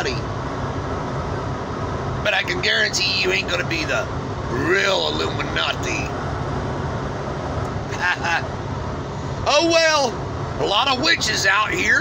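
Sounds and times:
road and engine rumble in cabin: 0:00.0 - 0:12.0.

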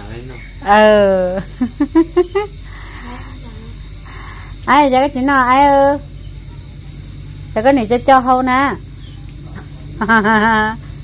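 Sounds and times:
high-pitched insect chirring: 0:00.0 - 0:11.0.

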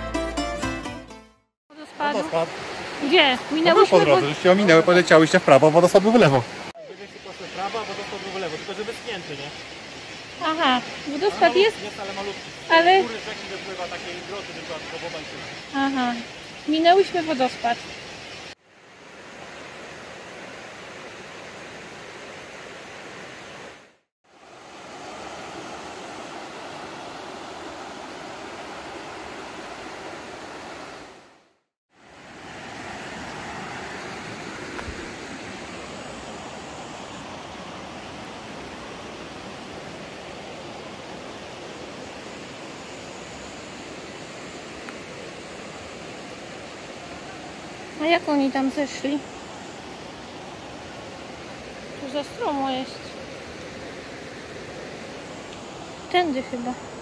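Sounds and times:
river water rushing: 0:01.7 - 0:57.0.

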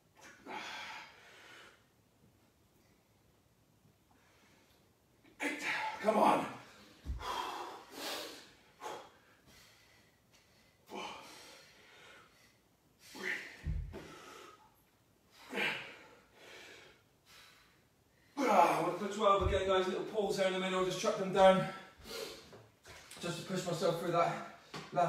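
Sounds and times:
people breathing heavily: 0:07.0 - 0:12.6
dull low thuds: 0:19.4 - 0:19.8.

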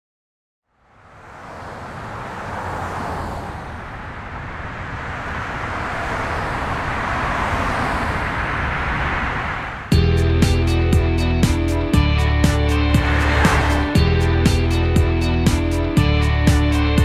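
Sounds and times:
city traffic rushing: 0:00.7 - 0:17.0.

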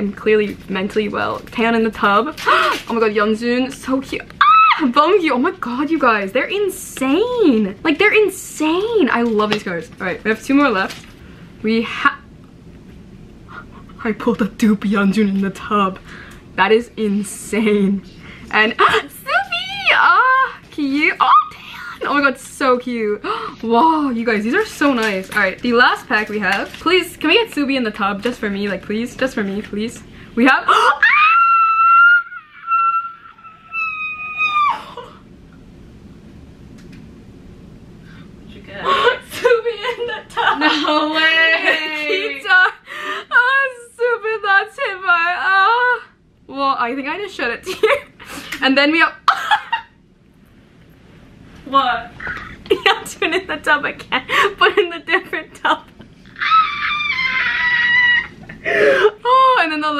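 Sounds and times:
woman screaming with excitement: 0:04.4 - 0:04.9, 0:30.8 - 0:35.2, 0:56.3 - 0:58.5
woman squealing: 0:04.4 - 0:05.1, 0:21.2 - 0:22.0, 0:30.6 - 0:35.2, 0:56.2 - 0:59.5
woman gasping: 0:42.8 - 0:43.4, 0:58.5 - 0:59.2.

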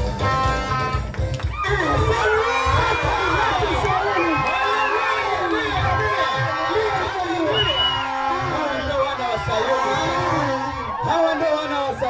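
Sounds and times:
band music with bass beat: 0:00.0 - 0:04.6
crowd shouting and cheering: 0:00.0 - 0:12.0.

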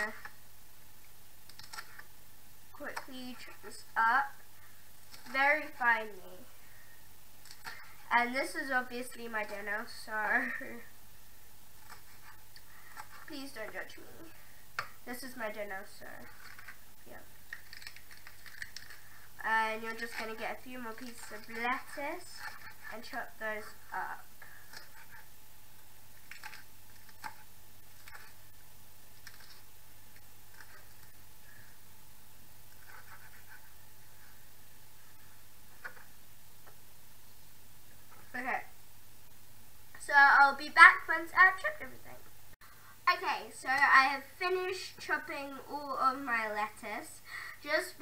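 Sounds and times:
room hiss: 0:00.0 - 0:48.0
person speaking: 0:02.7 - 0:04.4, 0:05.1 - 0:06.6, 0:07.6 - 0:10.9, 0:13.0 - 0:17.4, 0:19.4 - 0:24.9, 0:38.1 - 0:38.7, 0:40.0 - 0:42.3, 0:43.1 - 0:48.0.

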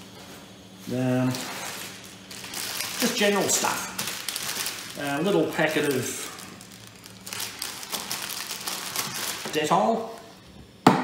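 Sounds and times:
plastic bag crinkling: 0:01.2 - 0:10.4.

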